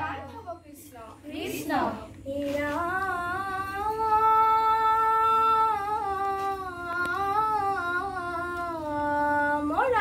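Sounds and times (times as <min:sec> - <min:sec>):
children singing devotional chant: 0:00.0 - 0:00.6, 0:01.2 - 0:10.0.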